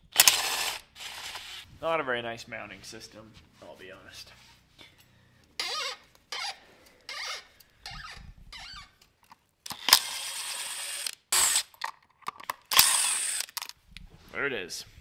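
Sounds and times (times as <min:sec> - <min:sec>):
cordless drill driving screws: 0:00.1 - 0:01.6, 0:05.6 - 0:08.1, 0:09.7 - 0:11.8, 0:12.7 - 0:13.6.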